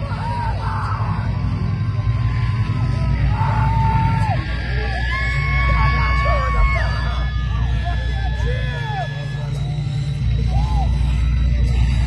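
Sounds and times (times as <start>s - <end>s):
crowd shouting: 0.0s - 12.0s
live metal band drone: 0.0s - 12.0s.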